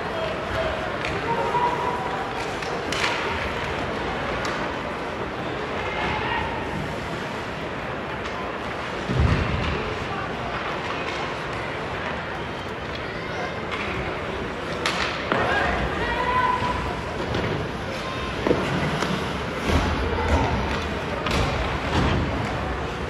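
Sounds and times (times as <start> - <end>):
murmur of spectators talking: 0.0 - 23.0.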